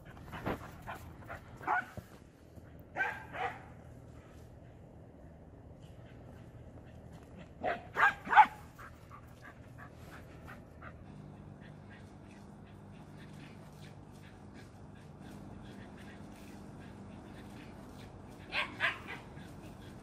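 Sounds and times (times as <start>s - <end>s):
small dog barking: 1.6s - 2.0s, 2.9s - 3.8s, 7.6s - 8.9s, 18.3s - 19.5s.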